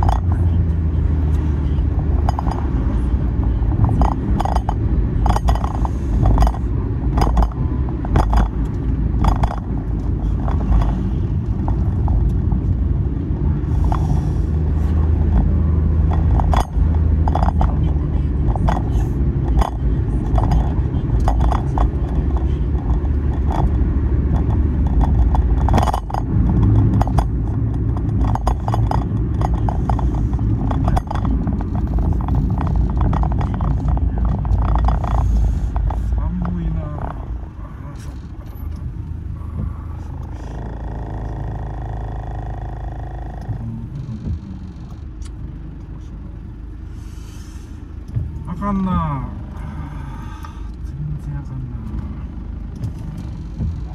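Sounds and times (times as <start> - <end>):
road and engine rumble: 0.0 - 53.9.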